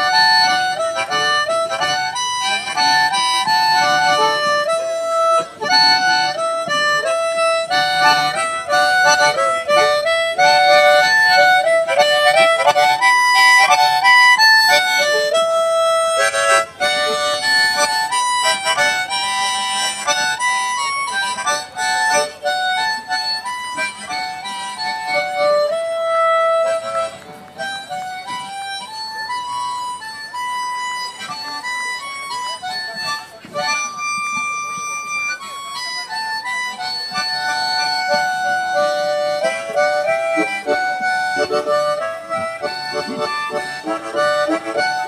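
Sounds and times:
harmonica melody: 0:00.0 - 0:45.0.

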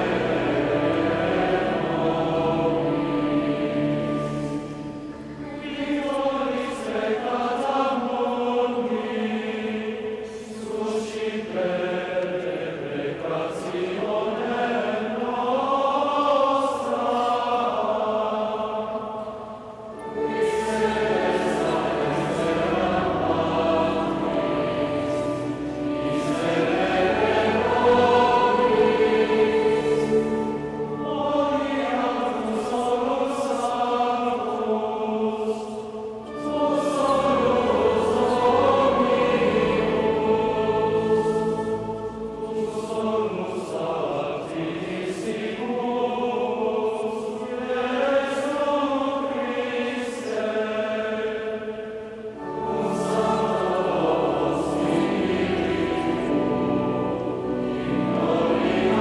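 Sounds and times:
choirs singing sacred music: 0:00.0 - 0:59.0.

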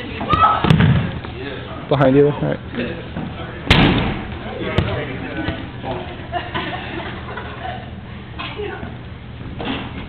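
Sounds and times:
players' voices: 0:00.0 - 0:06.8
dodgeballs smacking with echo: 0:00.2 - 0:01.4, 0:03.6 - 0:05.7.

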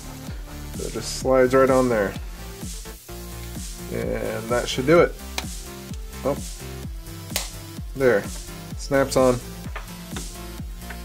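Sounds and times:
rhythmic background music: 0:00.0 - 0:11.0.

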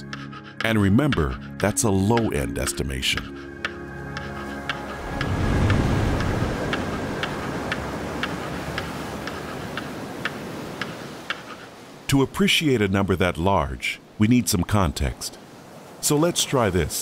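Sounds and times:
counter ticking: 0:00.0 - 0:11.7.

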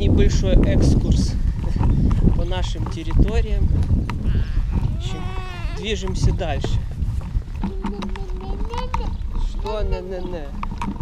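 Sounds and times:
pushchair rolling on rough path: 0:00.0 - 0:11.0
toddler vocalizing: 0:04.2 - 0:06.3, 0:07.5 - 0:09.2.

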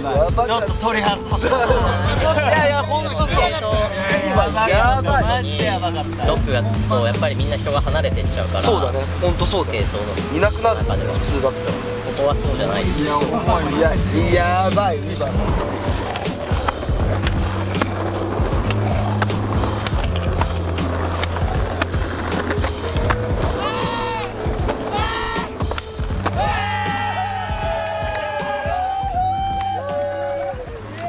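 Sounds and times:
music with deep bass line: 0:00.0 - 0:31.0
skateboards rolling on paving: 0:00.0 - 0:31.0.

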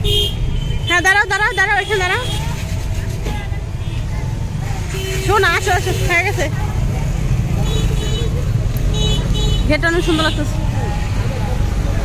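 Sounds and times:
faint voices: 0:09.7 - 0:12.0.

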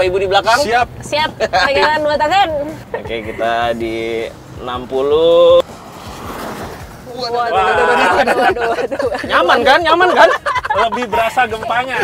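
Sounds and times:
tyre and road noise: 0:00.0 - 0:12.0.

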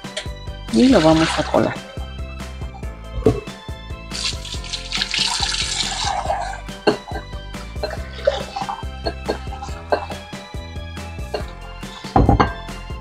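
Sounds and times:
background music: 0:00.0 - 0:13.0
tap water running into plastic bowl: 0:00.7 - 0:01.8, 0:04.2 - 0:06.5.

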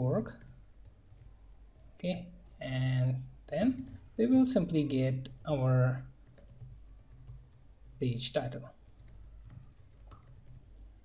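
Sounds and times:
faint keyboard typing: 0:00.0 - 0:11.0.

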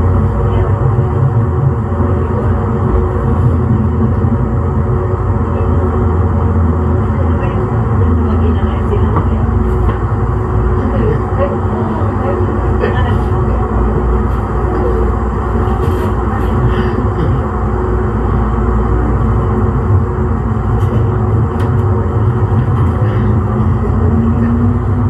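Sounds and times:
light rail vehicle rumble and hum: 0:00.0 - 0:25.0.

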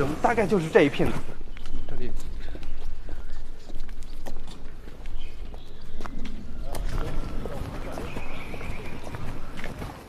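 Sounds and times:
footsteps on a hard path: 0:00.0 - 0:10.0.

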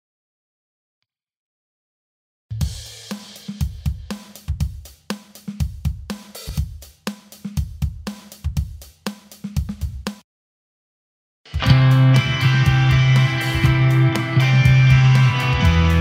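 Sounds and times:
programmed rock drum pattern: 0:02.5 - 0:10.2, 0:11.5 - 0:16.0.

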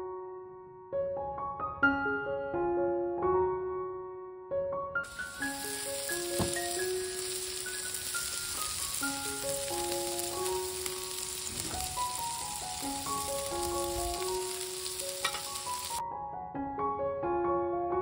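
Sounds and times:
piano background music: 0:00.0 - 0:18.0
meat sizzling on a griddle: 0:05.1 - 0:16.0.

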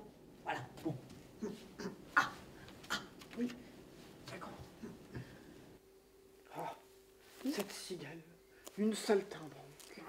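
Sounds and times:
person making non-word sounds: 0:00.4 - 0:05.4.

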